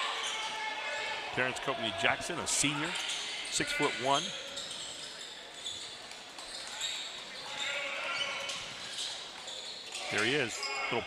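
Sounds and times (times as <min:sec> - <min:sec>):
crowd voices: 0:00.0 - 0:11.0
shoe squeaks: 0:02.9 - 0:11.0.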